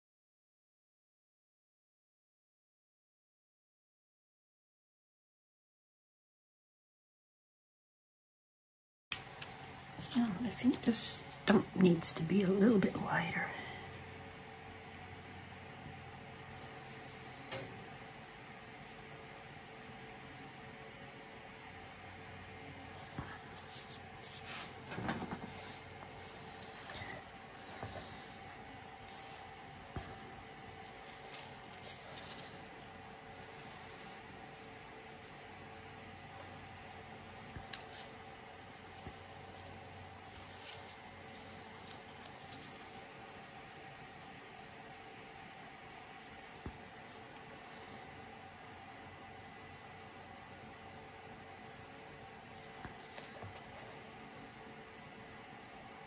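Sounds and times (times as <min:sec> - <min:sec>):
faint steady hum: 0:09.1 - 0:56.0.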